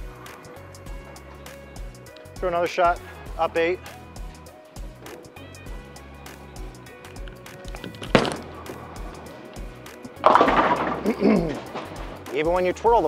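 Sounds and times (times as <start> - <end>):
background music with steady beat: 0.0 - 13.0
bowling ball thudding on lane: 7.8 - 9.3, 10.2 - 12.3
bowling pins crashing: 7.8 - 9.3, 10.0 - 12.6.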